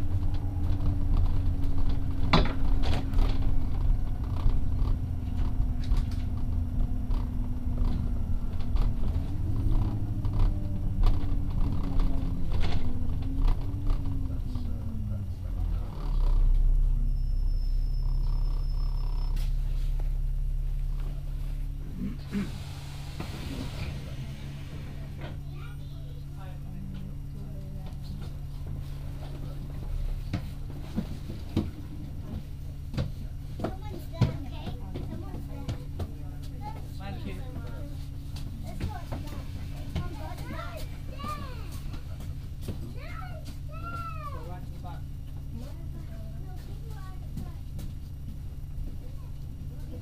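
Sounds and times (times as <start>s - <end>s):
bus engine and road drone: 0.0s - 50.0s.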